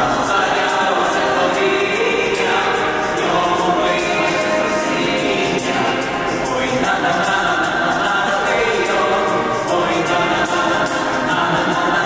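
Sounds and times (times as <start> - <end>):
mixed choir singing a hymn: 0.0 - 12.0.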